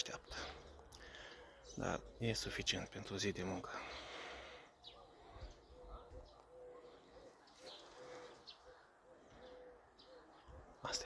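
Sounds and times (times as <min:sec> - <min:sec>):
bird chirps: 0:04.6 - 0:11.0.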